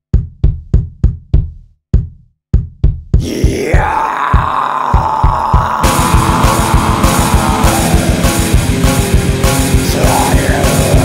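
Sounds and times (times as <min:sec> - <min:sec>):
steady drum beat: 0:00.1 - 0:11.0
distorted guitars: 0:03.2 - 0:11.0.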